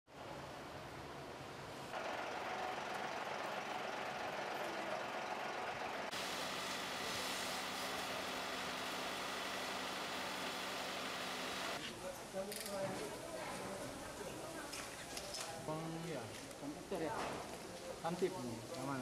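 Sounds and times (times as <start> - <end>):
engine humming: 2.0 - 11.8
fire engine pump motor running: 2.0 - 11.8
fire hose jet hissing: 6.1 - 11.8.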